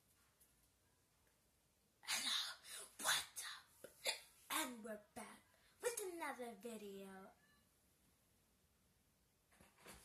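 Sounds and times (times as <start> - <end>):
child making vocal sounds: 2.0 - 6.1.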